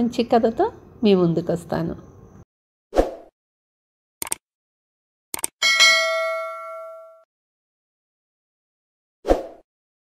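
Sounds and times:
bell ding: 5.6s - 7.3s.

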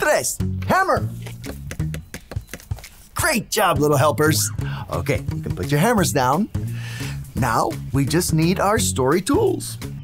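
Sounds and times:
background music with low bass: 0.0s - 10.0s
rapid hammer taps: 1.4s - 2.9s.

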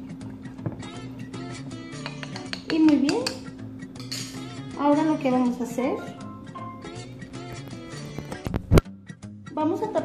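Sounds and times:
plucked guitar music: 0.2s - 10.0s.

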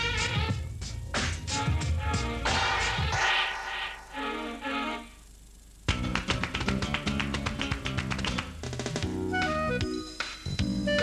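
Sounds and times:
fast percussive jingle music: 0.5s - 4.6s.

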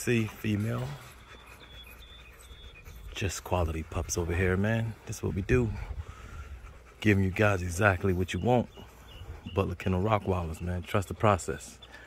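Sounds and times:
puppy panting: 0.0s - 12.0s
puppy high-pitched peeps: 0.6s - 4.3s.

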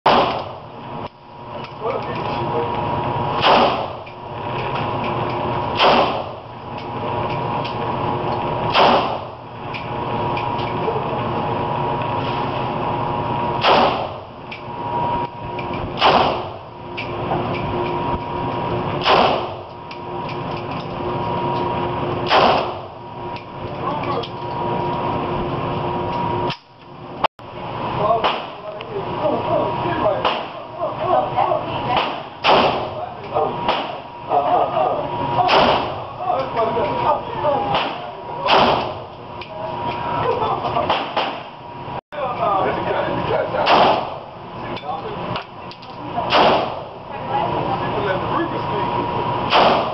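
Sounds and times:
rifle shots: 0.1s - 0.6s, 3.4s - 4.0s, 5.7s - 6.4s, 8.7s - 9.3s, 13.6s - 14.2s, 16.0s - 16.6s, 19.0s - 19.6s, 22.2s - 22.9s, 32.0s - 32.9s, 37.7s - 39.0s, 43.6s - 44.2s, 46.3s - 46.8s, 49.5s - 49.9s
steady hum: 0.1s - 49.9s.

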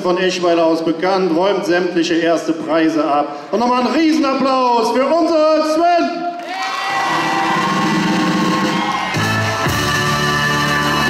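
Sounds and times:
crowd applauding: 6.4s - 9.9s.

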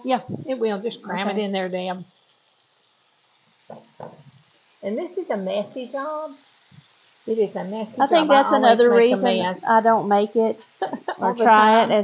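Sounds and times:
chicken sizzling in oil: 0.0s - 8.6s, 9.4s - 12.0s.

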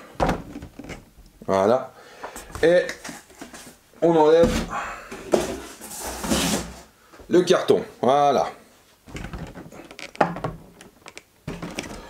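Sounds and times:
cardboard scraping and rustling: 4.4s - 6.9s.

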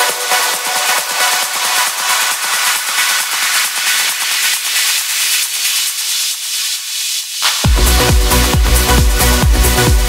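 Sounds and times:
trance track: 0.0s - 10.0s
hissing white-noise sweep: 3.6s - 9.9s.

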